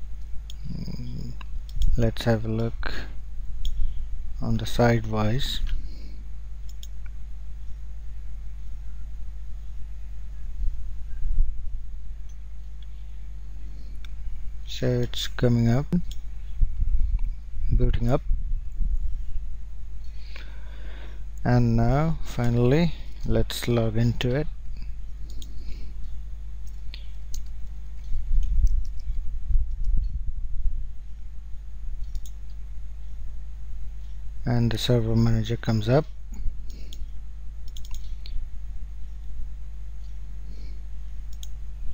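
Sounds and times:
low electrical hum: 0.0 - 41.9
faint clicks: 6.6 - 7.2, 24.8 - 30.0, 32.0 - 32.6, 36.3 - 38.4, 41.3 - 41.6
mouse clicks: 32.0 - 32.4, 37.7 - 38.4.

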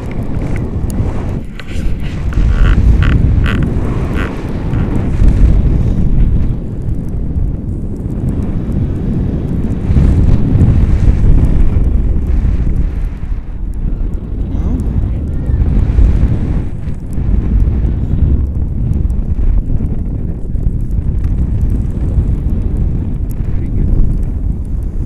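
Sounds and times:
wind rumbling on microphone: 0.0 - 25.0.

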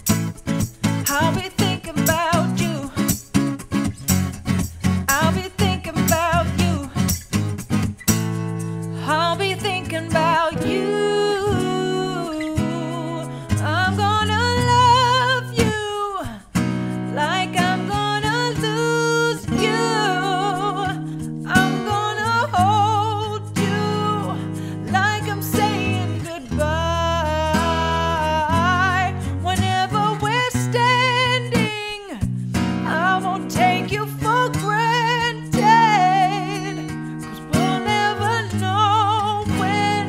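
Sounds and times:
strummed acoustic guitar: 0.0 - 40.0
woman singing pop ballad: 0.8 - 3.5, 5.0 - 7.4, 8.8 - 40.0.

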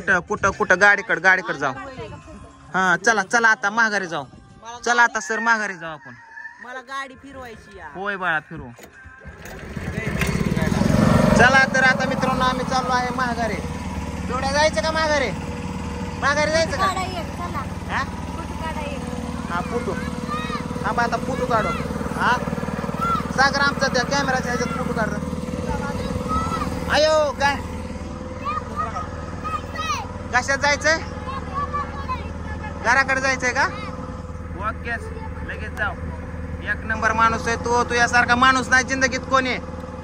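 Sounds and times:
boat engine droning: 0.0 - 40.0
people talking: 16.2 - 27.6.

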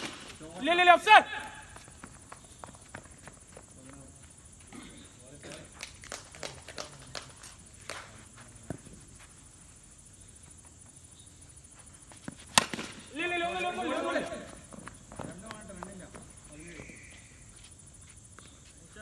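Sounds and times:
footsteps: 0.0 - 4.8, 10.4 - 19.0
players shouting: 0.4 - 2.0, 13.1 - 14.7
cricket bat striking ball: 12.5 - 13.2.

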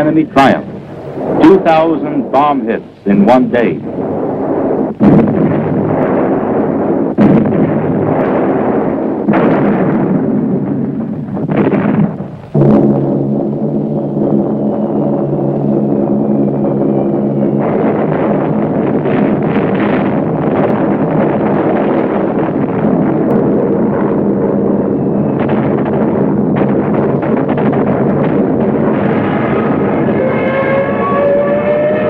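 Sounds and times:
explosions: 0.0 - 32.0
steady low drone: 0.0 - 32.0
falling whistle: 13.9 - 18.1, 29.2 - 32.0.

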